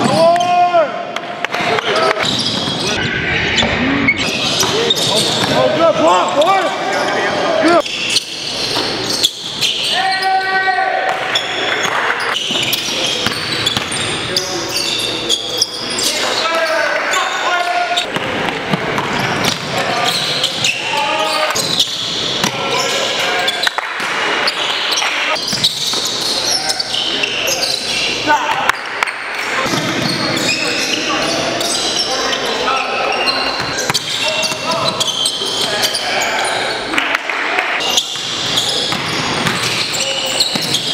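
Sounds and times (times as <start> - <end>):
players shouting and chattering: 0.0 - 40.9.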